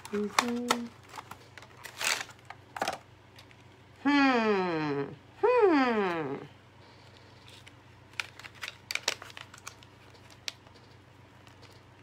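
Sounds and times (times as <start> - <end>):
woman humming: 4.0 - 6.5.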